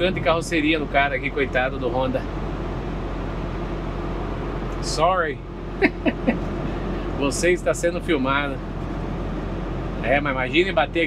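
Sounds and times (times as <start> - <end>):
truck engine and road noise: 0.0 - 11.0.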